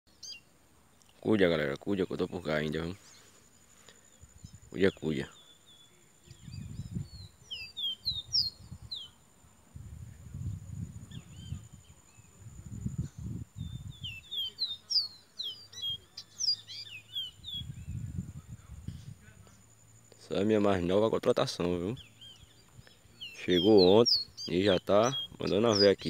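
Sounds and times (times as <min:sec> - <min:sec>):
bird whistling song: 0:05.3 - 0:09.2, 0:11.1 - 0:12.4, 0:13.0 - 0:18.1, 0:22.0 - 0:26.0.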